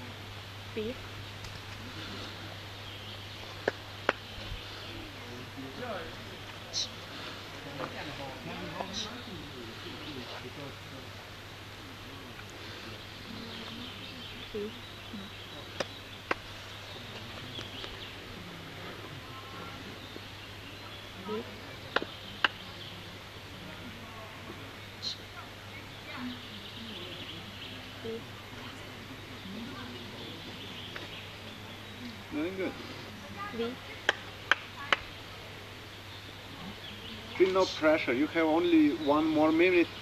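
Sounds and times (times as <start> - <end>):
faint murmuring voices: 0.0 - 40.0.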